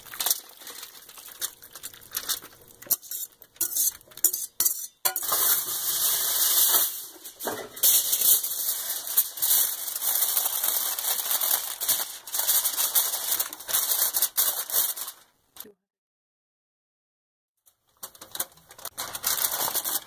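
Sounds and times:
aluminium foil crinkling: 0:00.0 - 0:15.4, 0:17.7 - 0:20.0.

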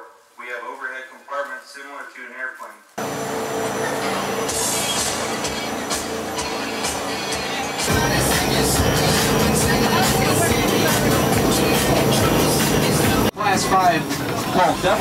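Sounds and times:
jet boat engine running: 0:03.0 - 0:15.0.

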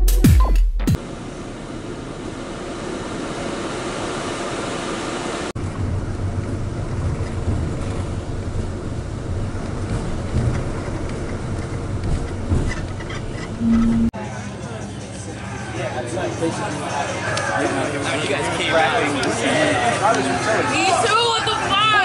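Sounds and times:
deep rumble: 0:01.0 - 0:14.2
road and engine noise in vehicle: 0:01.0 - 0:22.0.

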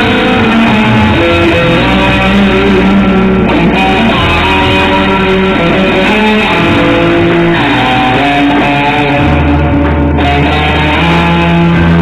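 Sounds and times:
electric guitar notes: 0:00.0 - 0:12.0.

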